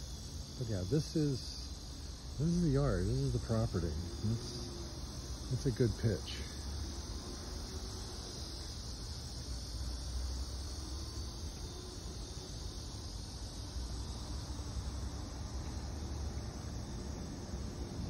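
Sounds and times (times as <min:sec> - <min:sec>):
insects droning: 0:00.0 - 0:18.0.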